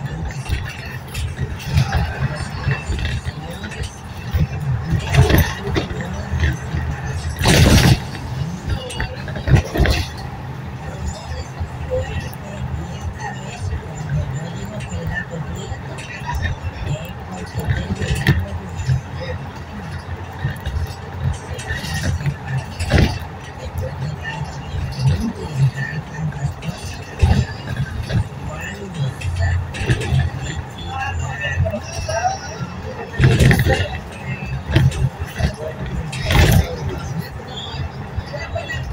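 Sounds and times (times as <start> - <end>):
indistinct voices talking: 0.0 - 38.9
vehicle road and engine rumble: 0.0 - 38.9.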